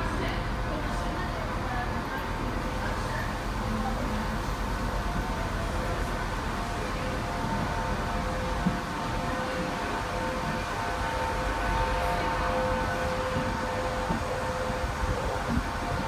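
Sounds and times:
low train rumble: 0.0s - 16.0s
train whine: 0.0s - 16.0s.

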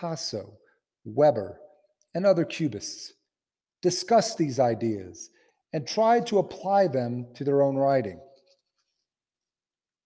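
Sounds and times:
man speaking: 0.0s - 8.3s.

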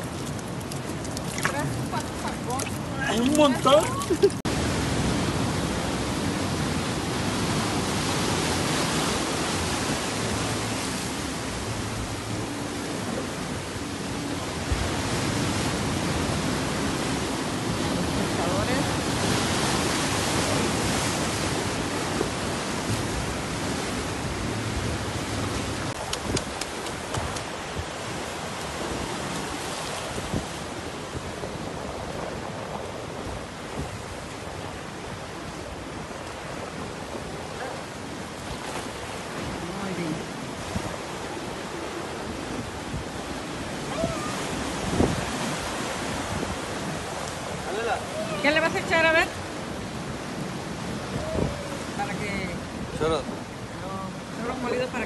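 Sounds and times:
surf breaking on rocky shore: 0.0s - 55.0s.

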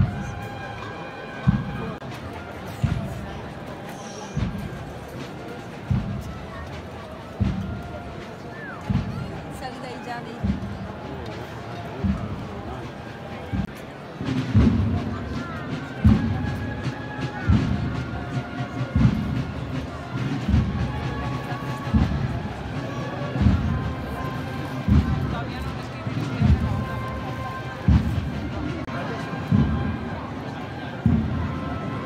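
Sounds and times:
murmur of crowd: 0.0s - 32.0s
bass drum beating slowly: 5.8s - 6.5s, 7.4s - 8.0s, 8.9s - 9.5s, 10.4s - 11.2s, 12.0s - 12.7s, 13.5s - 15.4s, 16.0s - 16.7s, 17.5s - 21.1s, 21.9s - 22.8s, 23.4s - 24.2s, 24.8s - 25.8s, 26.4s - 27.2s, 27.8s - 28.9s, 29.5s - 30.1s, 31.0s - 31.9s.

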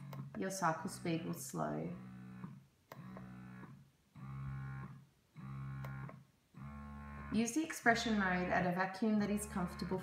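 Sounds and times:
breast pump motor humming: 0.0s - 10.0s.

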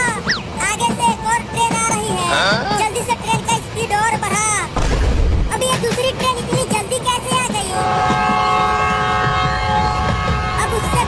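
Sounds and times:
low thump: 4.8s - 5.6s
train horn chord: 7.8s - 11.0s.

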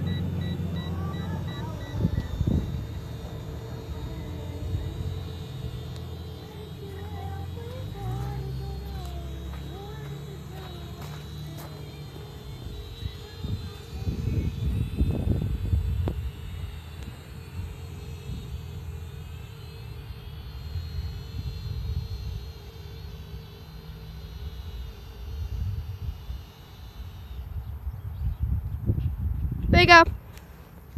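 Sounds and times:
quadcopter drone propeller whine: 0.0s - 30.9s
wind rumble on microphone: 1.7s - 3.3s, 12.5s - 18.6s, 27.5s - 30.3s.

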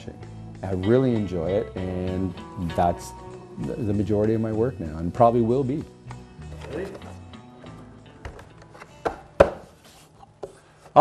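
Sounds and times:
wooden table knocks: 8.2s - 9.6s.

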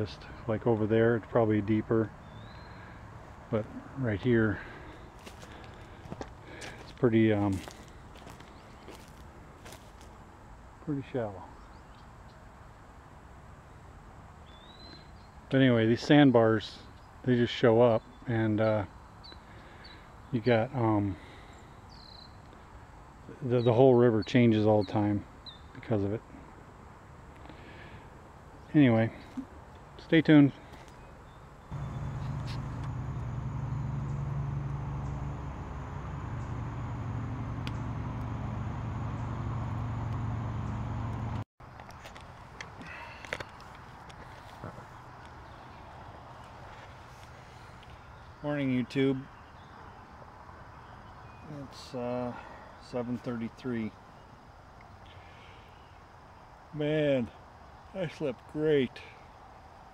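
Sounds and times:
low engine-like drone: 0.0s - 10.0s, 31.6s - 41.4s
low rumble: 31.7s - 41.4s.

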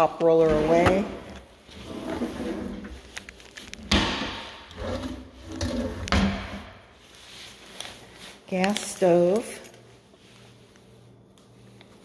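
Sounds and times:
drawer sliding on runners: 0.4s - 3.0s.

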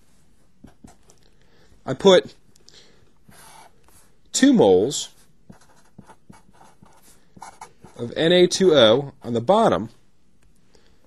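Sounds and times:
pen scratching while writing: 0.6s - 1.2s, 3.3s - 4.1s, 5.5s - 8.0s.

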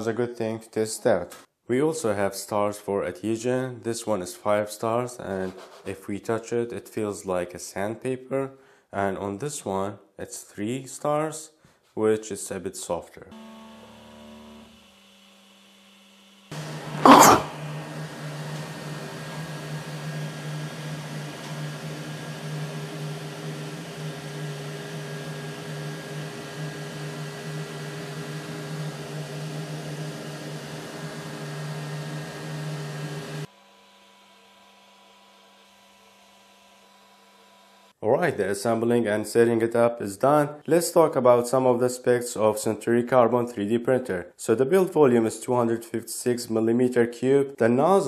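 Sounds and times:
printer motors and fans humming: 16.0s - 35.4s.

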